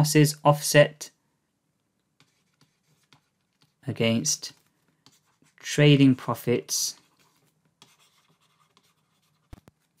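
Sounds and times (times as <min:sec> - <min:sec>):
stylus scratching on tablet: 0:02.2 - 0:05.8, 0:06.8 - 0:10.0.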